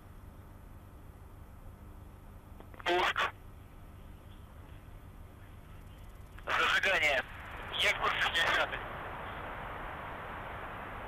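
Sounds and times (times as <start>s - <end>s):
low hum and hiss: 0.0s - 11.0s
voice calling over radio loop: 2.7s - 3.4s, 6.4s - 8.8s.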